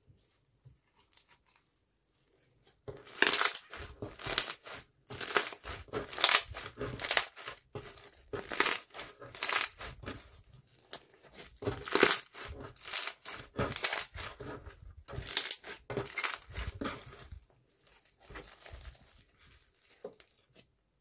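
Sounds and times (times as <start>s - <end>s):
slime squelching and crackling: 0.0s - 20.8s.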